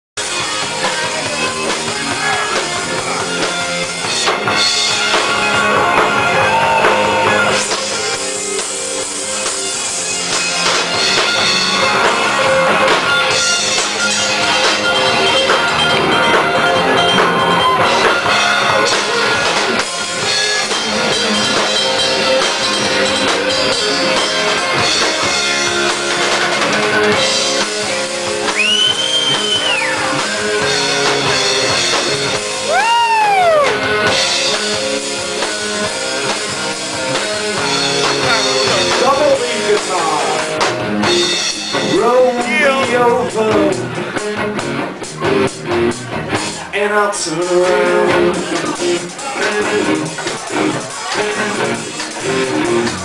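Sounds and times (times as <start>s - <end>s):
rock band playing: 0.2s - 53.0s.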